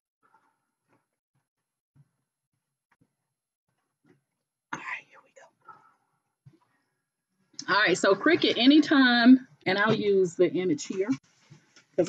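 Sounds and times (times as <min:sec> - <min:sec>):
woman speaking: 0:07.6 - 0:11.2.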